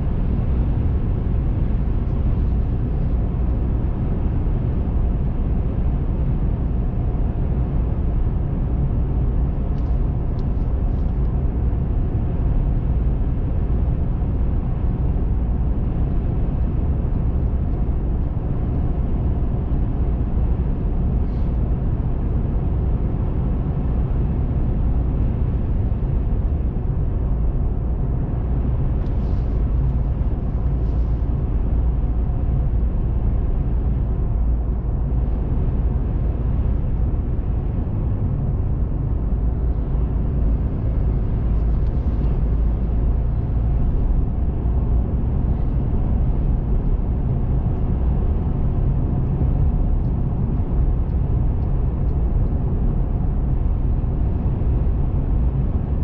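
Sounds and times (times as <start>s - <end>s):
car driving interior rumble: 0.0s - 56.0s.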